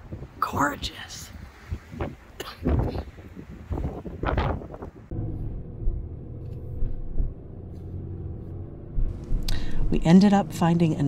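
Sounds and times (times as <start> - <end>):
wind gusts on microphone: 0.0 - 6.0
truck driving from inside cab: 5.1 - 11.0.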